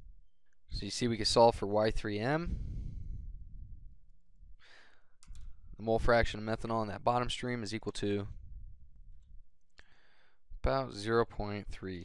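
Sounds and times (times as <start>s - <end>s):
man breathing in: 2.5s - 3.5s, 4.6s - 5.7s, 9.8s - 10.5s.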